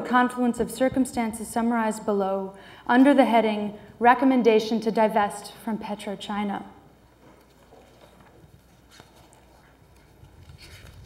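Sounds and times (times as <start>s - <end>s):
paper pages turning: 7.4s - 11.0s.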